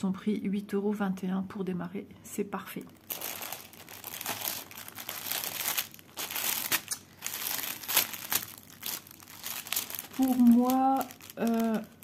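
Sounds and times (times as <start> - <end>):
plastic sleeve crinkling: 2.9 - 12.0.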